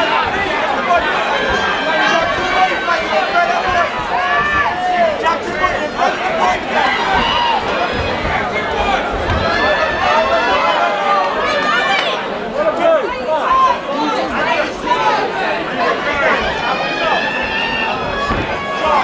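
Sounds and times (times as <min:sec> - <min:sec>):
crowd talking and calling out: 0:00.0 - 0:19.0.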